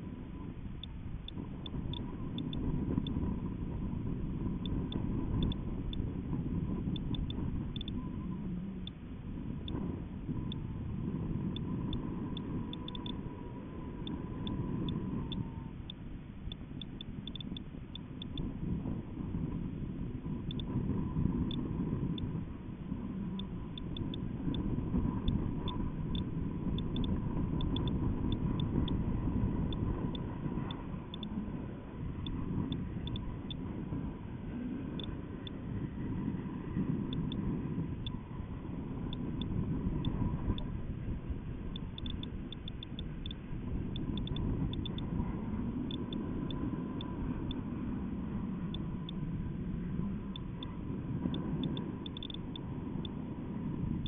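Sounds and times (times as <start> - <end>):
faint steady whine: 0.0 - 54.0
wind rumbling on microphone: 0.0 - 54.0
light ticks: 0.8 - 3.6, 4.4 - 6.1, 6.7 - 9.0, 11.5 - 13.3, 13.9 - 18.5, 20.4 - 22.4, 23.4 - 31.5, 32.2 - 33.6, 34.9 - 35.6, 37.1 - 38.3, 39.0 - 40.7, 41.7 - 47.6, 50.2 - 53.2.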